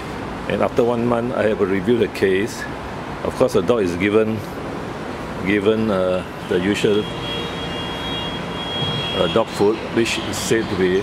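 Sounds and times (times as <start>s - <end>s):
high thin whine: 6.4s - 10.3s.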